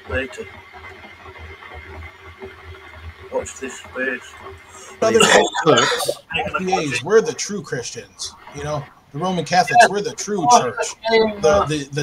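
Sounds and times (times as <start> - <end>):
man preaching: 4.9 - 12.0.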